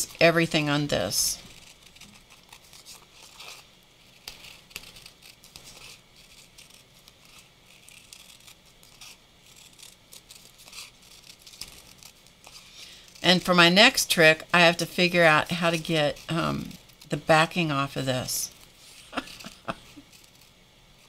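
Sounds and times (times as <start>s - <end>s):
paper rustling: 1.0s - 13.2s, 18.5s - 20.5s
scissors snipping paper: 1.5s - 13.2s, 19.2s - 20.5s.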